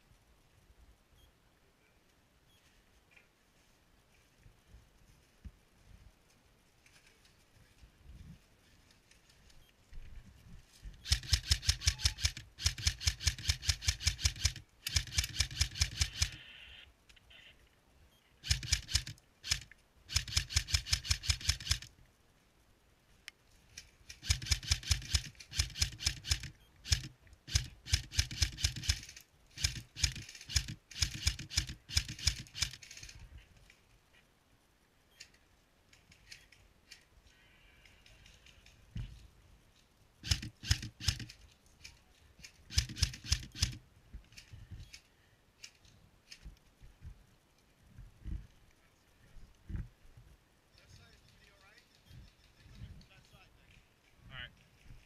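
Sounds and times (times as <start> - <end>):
airsoft rifle firing bursts: 11.0 - 16.4, 18.4 - 21.9, 24.1 - 32.8, 40.2 - 41.3, 42.7 - 43.8.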